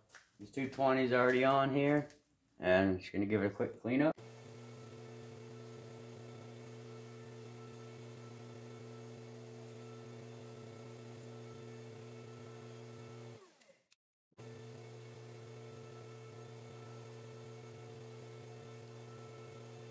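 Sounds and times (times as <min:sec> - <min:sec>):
belt grinder motor hum: 0:04.2 - 0:13.7, 0:14.4 - 0:19.9.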